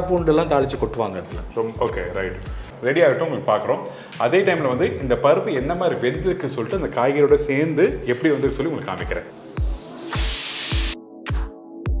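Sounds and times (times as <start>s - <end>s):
electronic music with kick drum: 0.0s - 2.7s, 9.4s - 12.0s
pressure cooker steam hissing: 9.5s - 11.0s.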